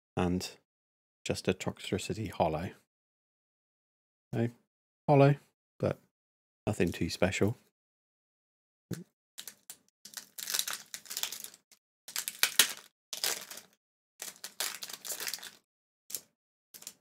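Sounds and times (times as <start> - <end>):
foil wrapper crinkling and tearing: 9.4 - 17.0.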